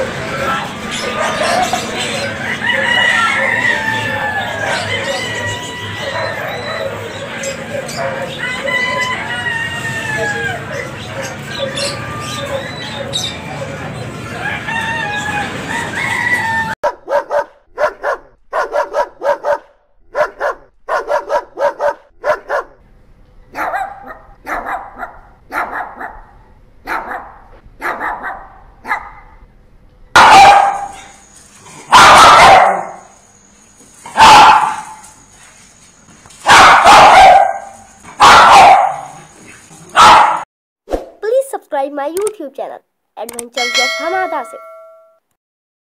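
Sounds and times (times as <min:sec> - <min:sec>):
busy market noise: 0:00.0 - 0:16.8
puppies yipping and barking: 0:00.0 - 0:18.2, 0:30.2 - 0:40.4
dog barking loudly: 0:01.0 - 0:02.0, 0:06.0 - 0:07.1, 0:16.8 - 0:22.8, 0:23.5 - 0:29.3, 0:30.2 - 0:31.2, 0:31.8 - 0:33.2, 0:34.1 - 0:35.1, 0:36.4 - 0:39.3, 0:39.9 - 0:40.4.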